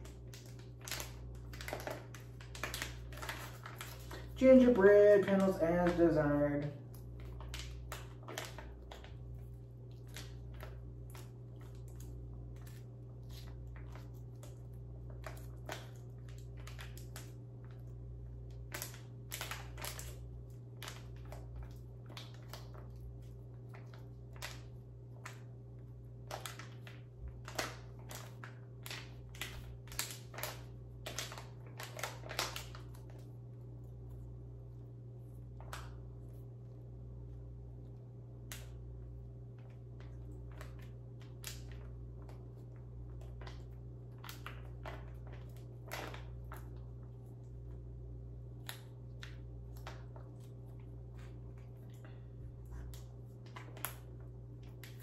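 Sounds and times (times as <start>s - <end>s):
paper packet crinkling: 0.0s - 34.2s.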